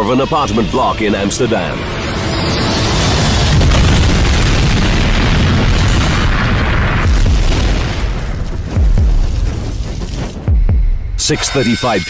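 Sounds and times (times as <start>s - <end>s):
jet crash explosion: 1.7s - 10.5s
deep rumbling boom: 3.0s - 11.2s.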